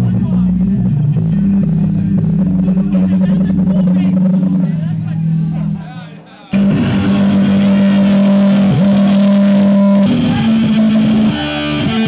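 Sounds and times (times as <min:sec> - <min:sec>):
electric bass long note: 0:00.0 - 0:05.9, 0:06.6 - 0:12.0.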